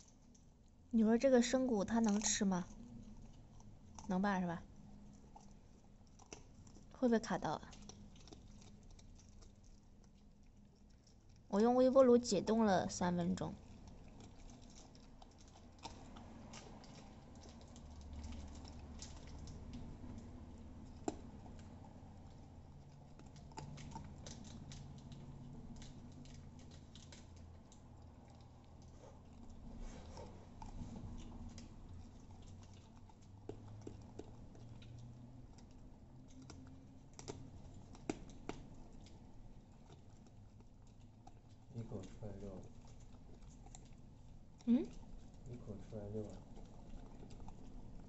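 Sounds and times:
puppy gnawing bone: 0:00.0 - 0:48.0.

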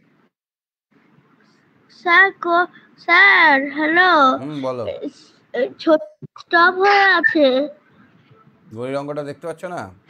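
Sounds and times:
child calling sing-song: 0:05.9 - 0:07.8.

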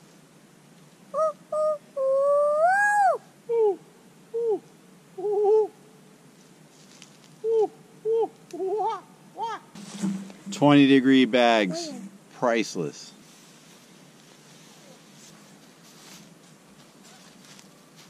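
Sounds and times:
child hooting wordless notes: 0:01.2 - 0:03.8, 0:07.4 - 0:09.7, 0:11.6 - 0:12.1.

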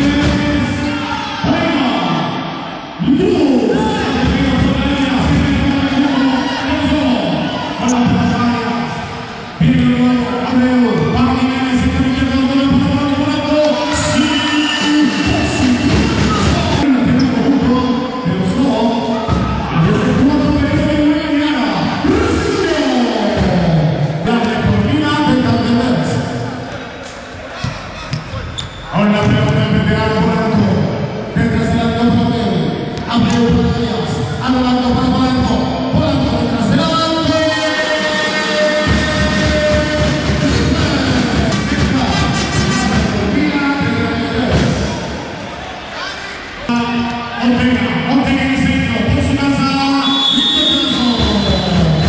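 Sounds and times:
man talking loudly: 0:03.0 - 0:26.6, 0:28.4 - 0:45.1, 0:46.6 - 0:52.0
basketball gym din: 0:23.3 - 0:37.3, 0:38.9 - 0:45.6
music: 0:36.8 - 0:43.4.

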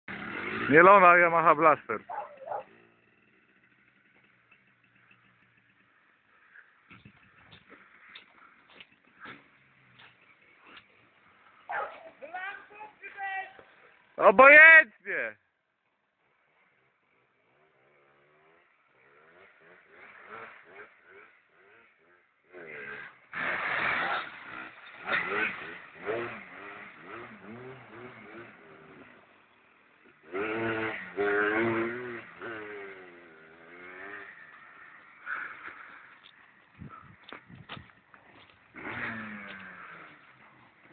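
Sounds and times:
quad bike engine revving: 0:00.1 - 0:12.8, 0:16.6 - 0:40.9
wheels spinning in loose sand: 0:00.1 - 0:14.2, 0:16.2 - 0:40.9.

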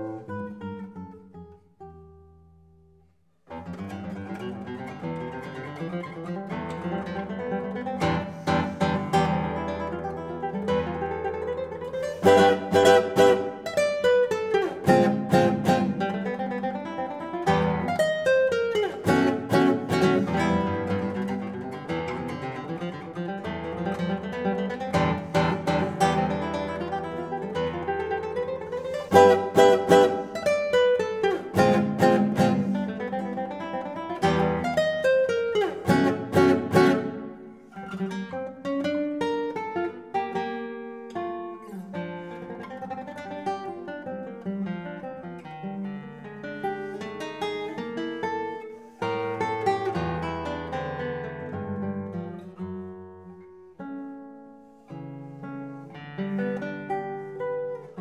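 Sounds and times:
classical guitar playing: 0:00.0 - 0:58.0.

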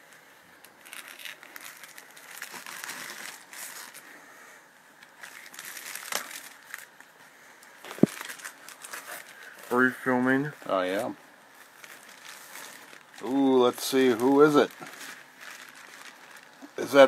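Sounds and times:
plastic mailer crinkling: 0:00.6 - 0:04.1, 0:05.0 - 0:07.0, 0:07.8 - 0:09.9, 0:10.9 - 0:17.0.

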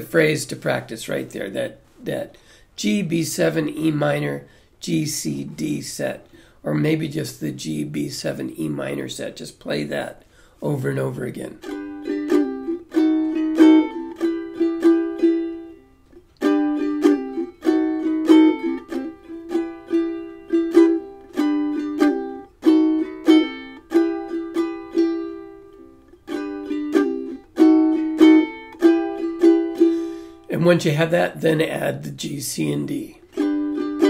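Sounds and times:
ukulele strumming chords: 0:10.8 - 0:34.0.

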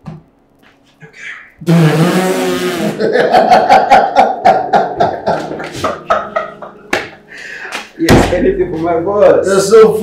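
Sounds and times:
men laughing hard: 0:02.9 - 0:07.9.

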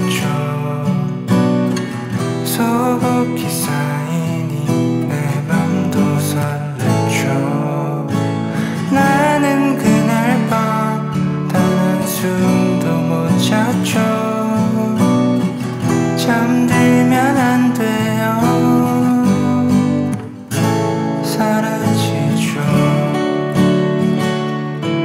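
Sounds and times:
acoustic guitar folk playing: 0:00.0 - 0:25.0.

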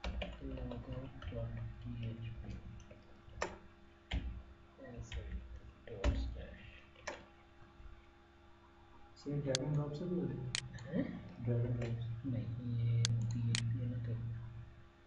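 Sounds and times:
keyboard and mouse clicks: 0:07.0 - 0:07.3, 0:13.0 - 0:13.7.

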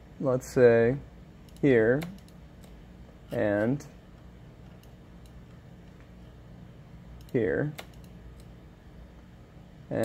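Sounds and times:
low room hum: 0:00.0 - 0:10.0
computer mouse clicks: 0:07.2 - 0:08.5.

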